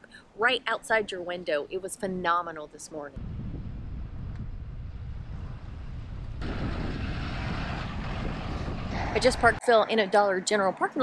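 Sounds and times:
wind buffeting microphone: 3.2 - 9.9.

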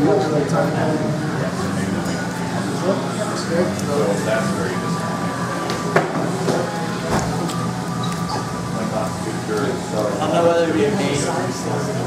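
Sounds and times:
faint background music: 0.0 - 12.0
restaurant room hum: 0.0 - 12.0.

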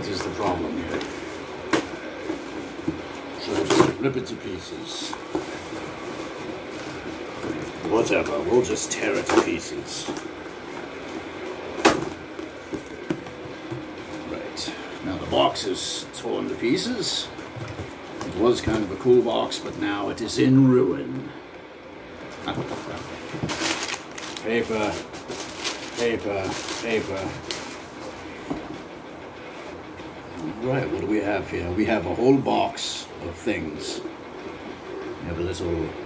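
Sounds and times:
cardboard rustling and scraping: 0.1 - 14.3, 22.3 - 28.8
packing paper rustling: 22.4 - 28.3.

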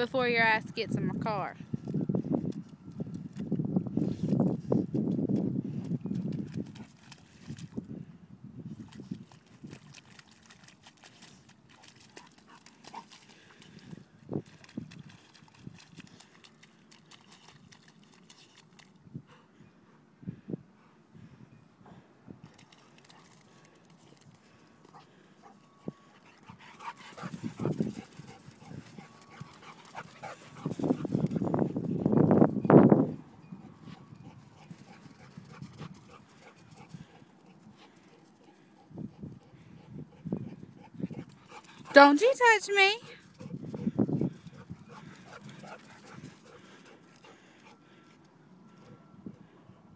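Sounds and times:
dog paws splashing in mud: 8.8 - 19.0.

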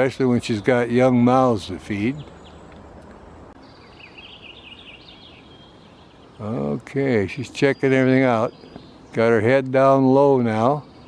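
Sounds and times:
bird chirping: 0.0 - 11.0
faint outdoor background noise: 0.0 - 11.0.

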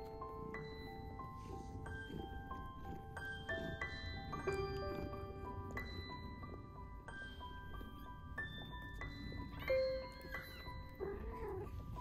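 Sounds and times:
background music with mallet notes: 0.0 - 12.0.

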